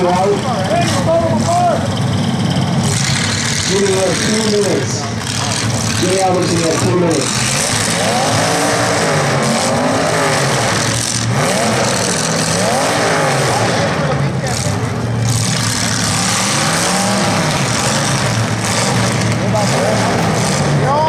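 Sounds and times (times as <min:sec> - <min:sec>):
car engines revving: 0:00.0 - 0:21.0.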